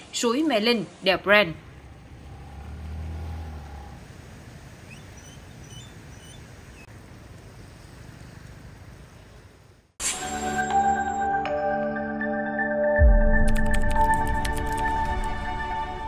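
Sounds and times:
traffic: 0:00.0 - 0:10.0
vehicle engine rumbling: 0:01.0 - 0:09.9.

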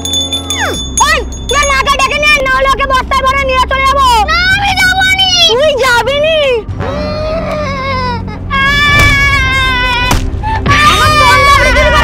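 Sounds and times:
young girl crying: 0:06.8 - 0:12.0.

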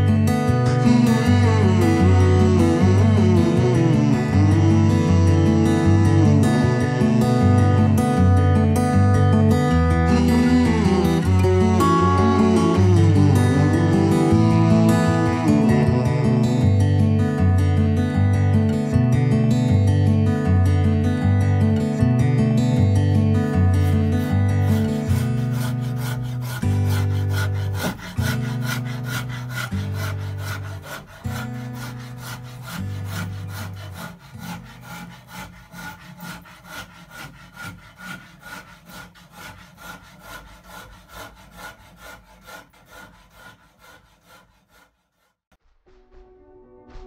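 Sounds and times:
guitar music: 0:00.0 - 0:34.9
hand saw cutting wood: 0:09.6 - 0:16.6, 0:23.3 - 0:45.4.

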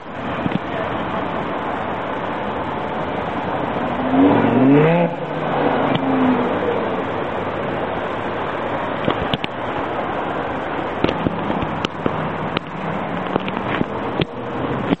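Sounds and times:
car engine driving off: 0:00.0 - 0:15.0
exhaust pops and cracks: 0:00.0 - 0:15.0.

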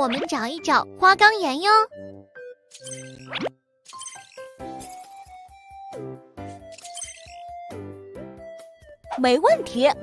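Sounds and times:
children's background music: 0:00.0 - 0:10.0
electronic interface tones: 0:06.5 - 0:07.6.

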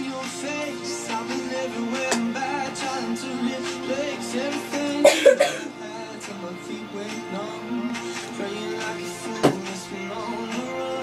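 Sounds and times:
background music: 0:00.0 - 0:11.0
person coughing: 0:05.0 - 0:05.7.

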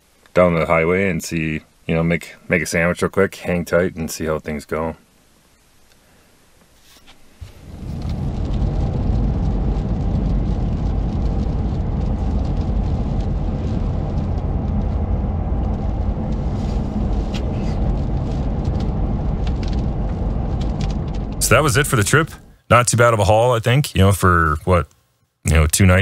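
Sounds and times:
vehicle road and engine noise: 0:07.5 - 0:22.4.

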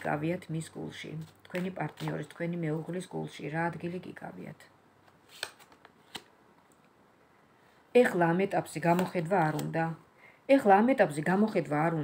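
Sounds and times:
cards rustling: 0:01.2 - 0:02.4, 0:05.1 - 0:06.3, 0:08.8 - 0:09.8.

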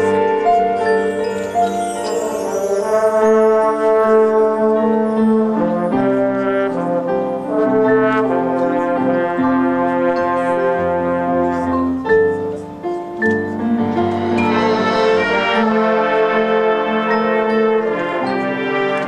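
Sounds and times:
brass band held chords: 0:00.0 - 0:19.0.

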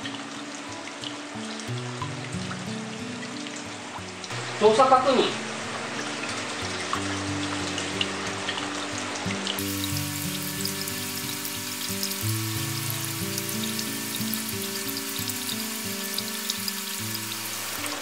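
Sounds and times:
background music: 0:00.0 - 0:18.0
water spraying onto rock and soil: 0:04.3 - 0:18.0.

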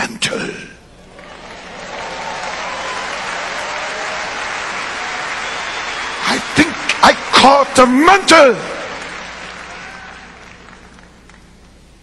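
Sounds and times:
audience applause: 0:01.1 - 0:11.6.

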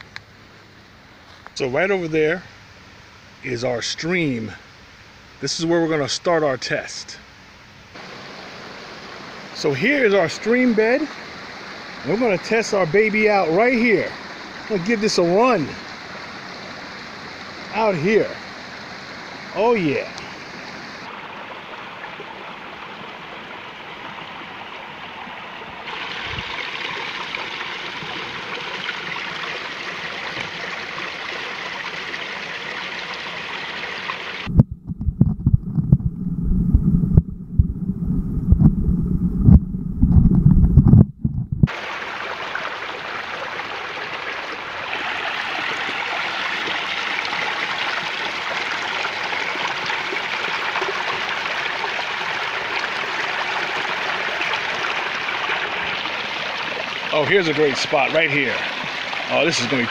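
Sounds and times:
creek water trickling over rocks: 0:08.0 - 0:34.5, 0:41.7 - 0:59.9
muffled underwater knocks and rumbles: 0:34.5 - 0:41.7.

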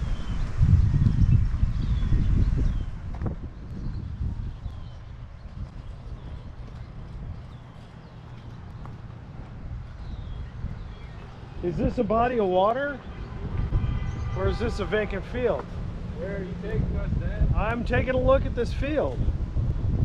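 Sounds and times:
low rumbling on microphone: 0:00.0 - 0:20.0
bird chirps: 0:09.9 - 0:11.6.

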